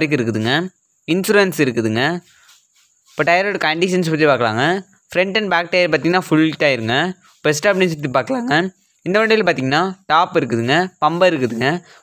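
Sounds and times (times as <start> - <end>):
man speaking: 0.0 - 2.4, 3.1 - 12.0.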